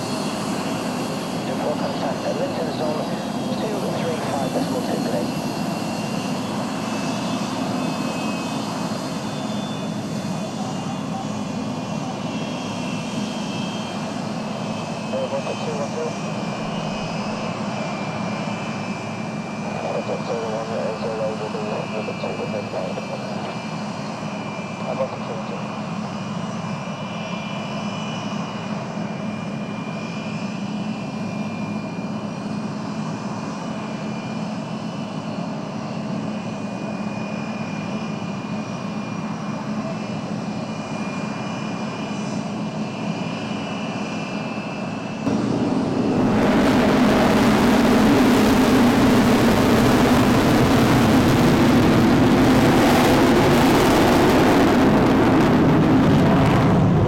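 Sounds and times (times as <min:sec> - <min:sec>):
jet engine whine: 0:00.0 - 0:57.0.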